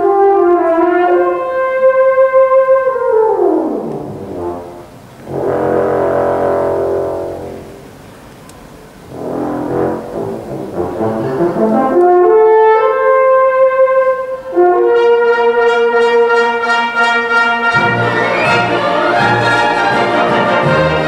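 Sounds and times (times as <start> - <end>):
orchestra playing chords: 0.0 - 21.0
solo euphonium held notes: 0.0 - 21.0.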